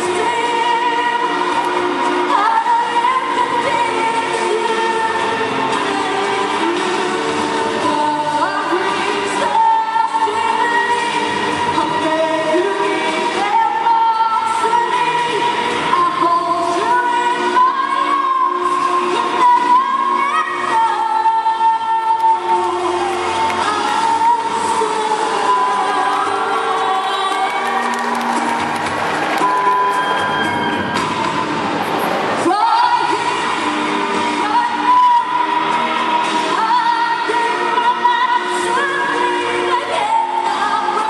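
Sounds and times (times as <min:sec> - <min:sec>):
woman singing: 0:00.0 - 0:28.2, 0:32.4 - 0:41.0.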